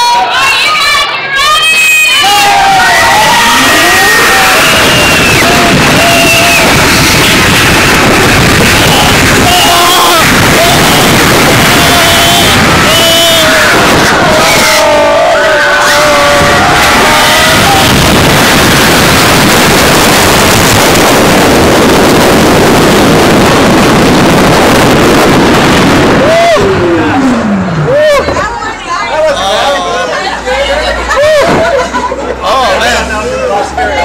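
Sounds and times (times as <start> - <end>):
riders yelling and screaming: 0.0 - 19.5, 26.1 - 28.5
roller coaster on steel track: 0.0 - 34.0
wind rushing over microphone: 2.5 - 28.5.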